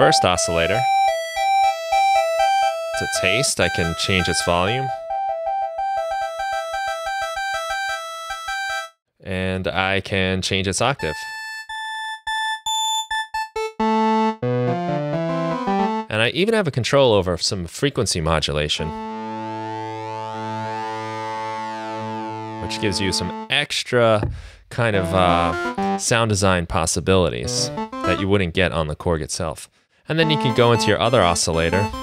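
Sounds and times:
buzzy synthesizer low note: 18.9 - 23.5
synth playing fast short notes: 27.4 - 28.3.

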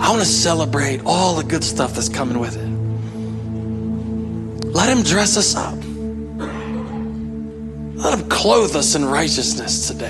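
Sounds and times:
ambient synth pad chord: 0.0 - 10.0.

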